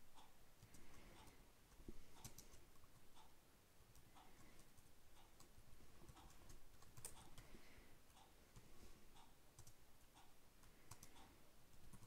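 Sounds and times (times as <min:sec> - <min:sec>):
computer keyboard typing: 0:02.0 - 0:03.1, 0:03.9 - 0:07.5, 0:09.5 - 0:12.0.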